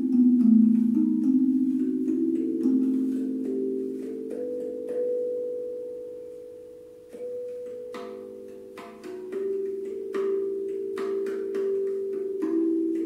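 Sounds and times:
handpan notes ringing: 0.0s - 13.0s.

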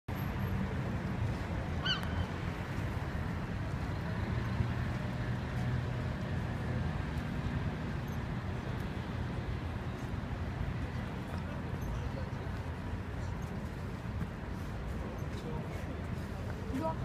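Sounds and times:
low rumble of city traffic: 0.1s - 17.0s.

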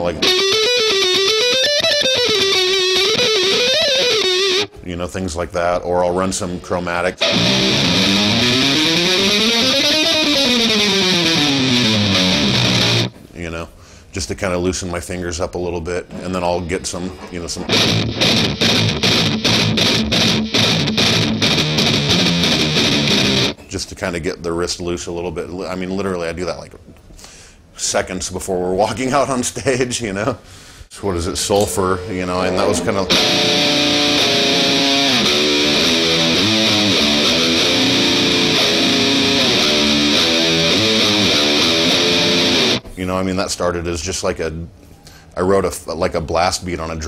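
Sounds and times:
electric guitar fast picked runs: 7.2s - 13.1s, 17.7s - 23.6s, 31.5s - 42.8s.

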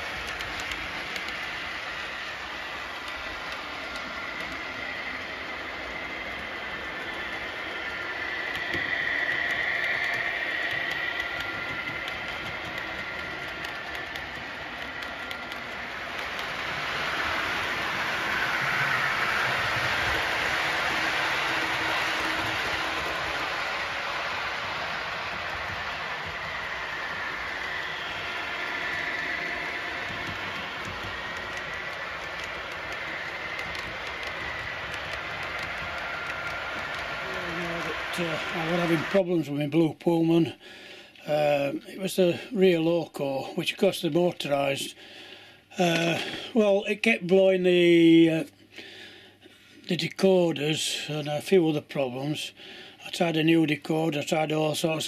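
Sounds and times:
model train wheels rattling on track: 0.0s - 40.6s, 41.2s - 48.5s, 49.8s - 55.0s
faint motor whine: 0.0s - 55.0s.

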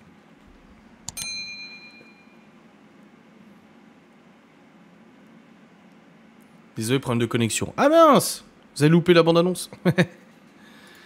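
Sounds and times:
bright metallic ding: 1.1s - 2.4s.

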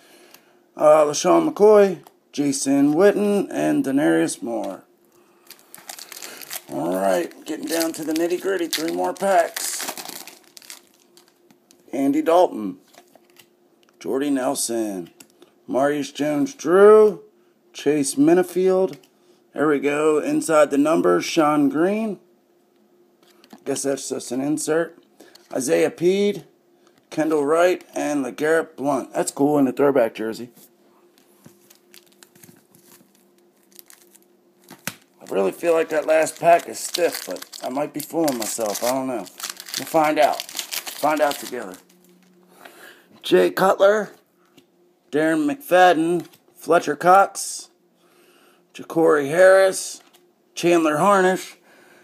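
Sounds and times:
low steady hum: 0.0s - 52.0s
foil wrapper crinkling: 5.4s - 11.8s, 31.5s - 42.4s.

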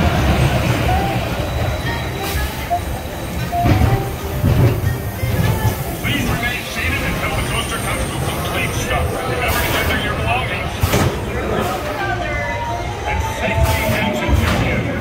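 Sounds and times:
roller coaster wheels rumbling on track: 0.0s - 15.0s.

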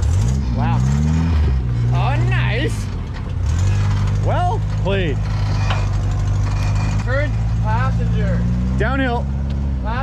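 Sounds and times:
engine running at low revs: 0.0s - 10.0s.

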